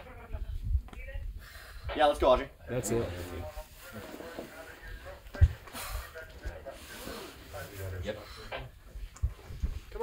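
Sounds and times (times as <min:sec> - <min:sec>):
wind rumble on microphone: 0:09.0 - 0:10.0.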